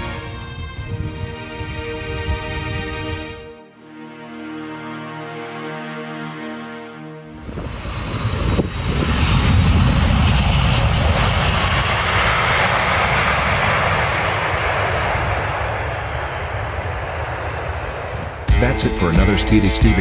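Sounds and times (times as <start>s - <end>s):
loud jet engines: 0.0s - 3.4s, 7.3s - 18.5s.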